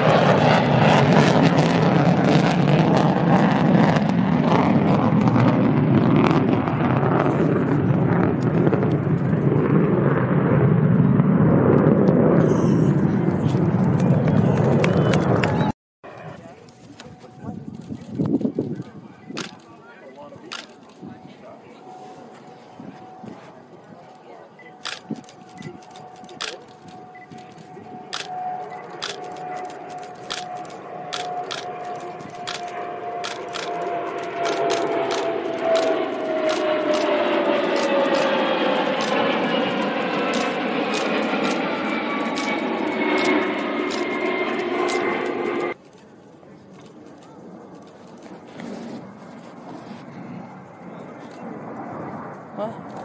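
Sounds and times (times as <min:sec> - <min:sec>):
jet aircraft passing: 0:00.0 - 0:53.0.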